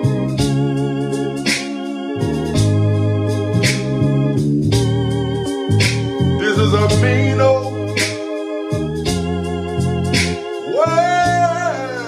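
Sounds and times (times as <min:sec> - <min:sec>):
electronic organ chords: 0:00.0 - 0:12.0.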